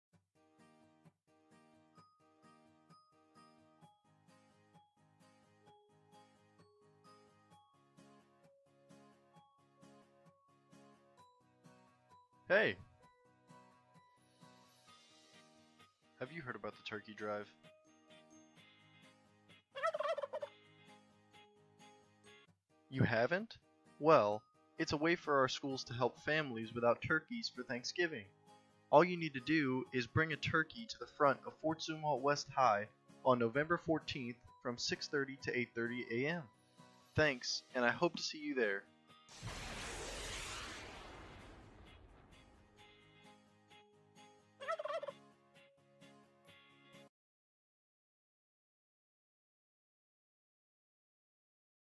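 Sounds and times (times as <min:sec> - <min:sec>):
quiet background music: 0:02.0 - 0:18.3, 0:21.8 - 0:39.2
turkey gobble: 0:19.8 - 0:20.6, 0:44.6 - 0:45.2.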